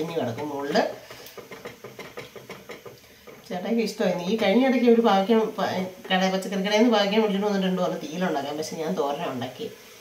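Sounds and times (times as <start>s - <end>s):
spatula scraping in a pan: 0.0s - 4.6s
light knocks against a pan: 1.4s - 3.5s.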